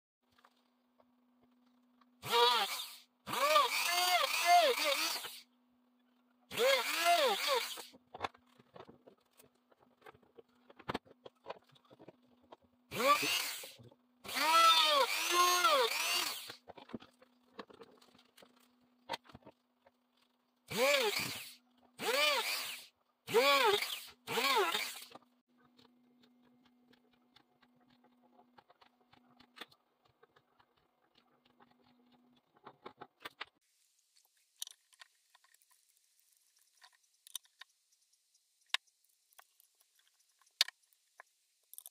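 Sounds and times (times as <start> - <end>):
rotary tool drilling wood: 2.2 - 5.5, 6.5 - 8.0, 12.9 - 16.7, 20.7 - 25.3.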